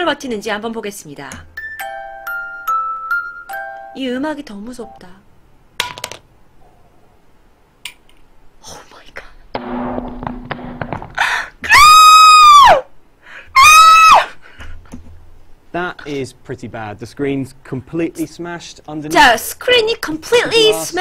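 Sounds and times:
breathy noise: 11.0s - 11.6s
woman squealing: 11.6s - 12.9s, 13.6s - 14.4s.

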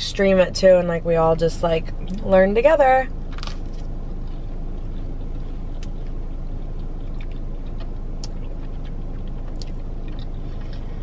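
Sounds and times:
car engine idling: 0.0s - 11.0s
mouth clicks chewing toast: 4.8s - 11.0s.

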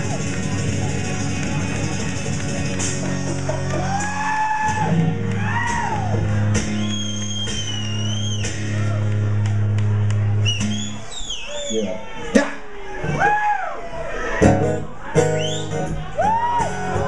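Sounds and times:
live rock band playing: 0.0s - 11.1s, 14.4s - 17.0s.

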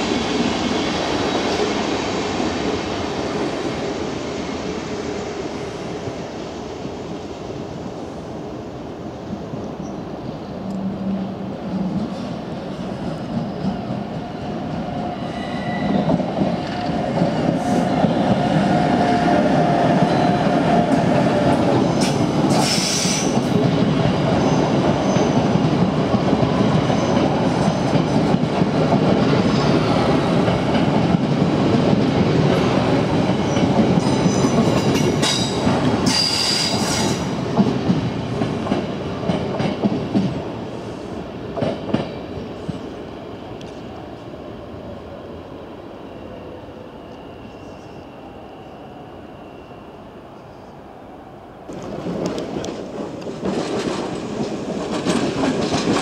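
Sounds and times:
train wheels clattering on rails: 11.7s - 40.7s, 41.5s - 43.0s, 51.7s - 56.0s.

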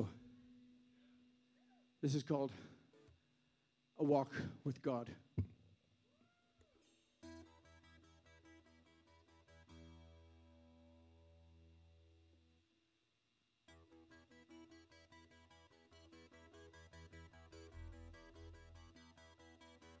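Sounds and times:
guitar notes and chord: 7.2s - 12.2s, 13.7s - 20.0s.

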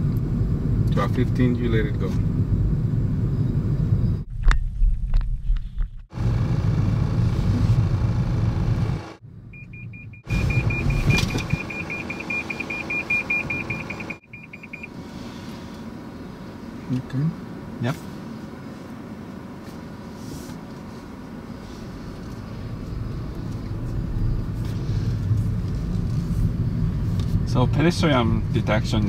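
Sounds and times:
road and tyre rumble: 0.0s - 29.0s.

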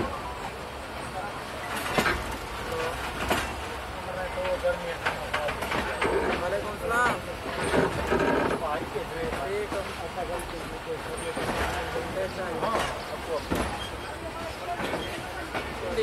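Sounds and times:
voices talking: 0.0s - 16.0s
train wheels clacking on rails: 1.5s - 16.0s.

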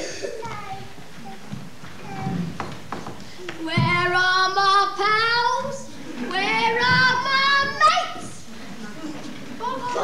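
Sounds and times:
child singing with vibrato: 0.0s - 2.7s, 3.6s - 8.4s.

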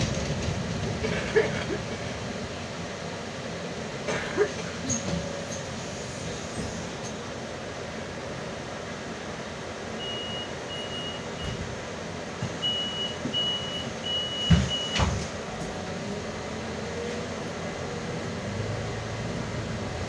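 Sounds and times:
bus engine running hum: 0.0s - 20.0s
high door warning beeps: 10.0s - 11.6s, 12.6s - 15.2s
bus doors shutting thumps: 12.4s - 15.8s.

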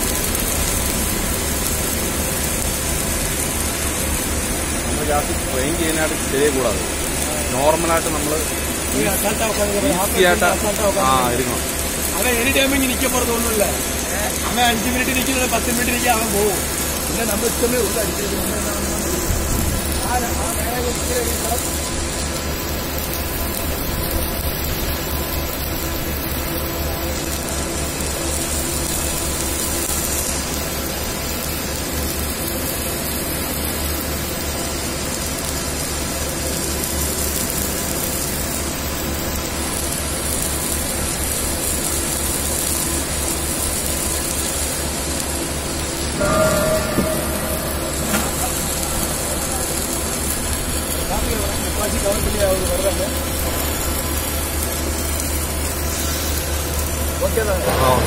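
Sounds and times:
arc welding hum and hiss: 0.0s - 58.0s
low drone: 45.8s - 51.6s, 53.0s - 58.0s.

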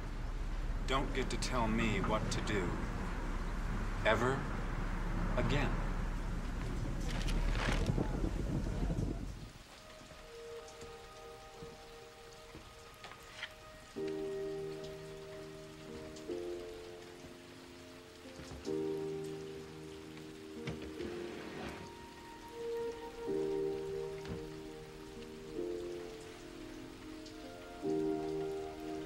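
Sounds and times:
slow film score chords: 0.0s - 7.0s, 8.9s - 13.1s, 13.7s - 29.0s
steady rain: 0.0s - 29.0s.

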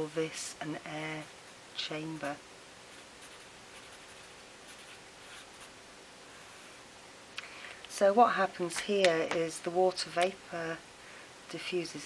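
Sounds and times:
pen scratching on paper: 2.1s - 5.7s.

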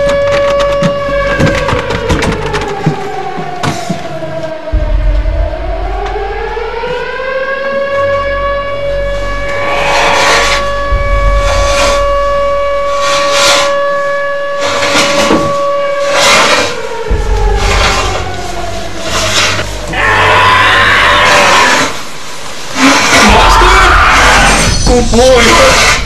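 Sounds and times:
low rumble: 0.0s - 26.0s
siren-like wailing tone: 0.0s - 26.0s.

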